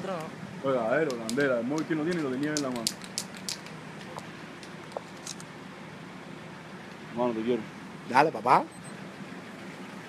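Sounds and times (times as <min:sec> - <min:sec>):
night street background noise: 0:00.0 - 0:10.0.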